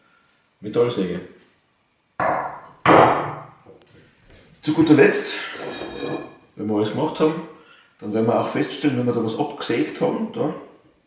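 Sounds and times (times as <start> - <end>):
hacksaw knocking on wooden bench: 2.2 - 3.4.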